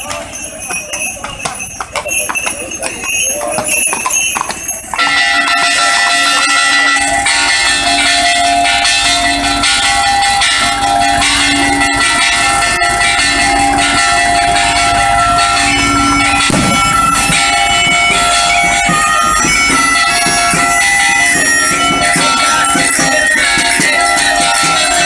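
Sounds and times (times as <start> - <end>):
bagpipe playing: 10.5 - 25.0.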